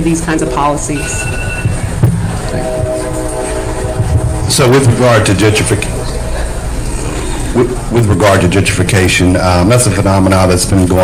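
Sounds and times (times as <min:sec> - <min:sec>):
droning tone: 0:00.0 - 0:09.8.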